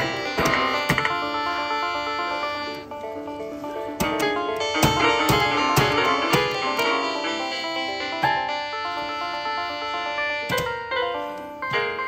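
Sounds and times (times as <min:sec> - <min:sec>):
toy keyboard electronic notes: 0:00.0 - 0:03.0, 0:04.0 - 0:12.0.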